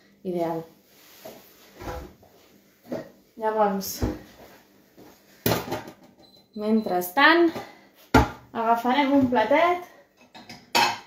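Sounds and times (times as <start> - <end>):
kitchenware clattering: 10.1 - 11.0
kitchenware knock: 10.4 - 11.0.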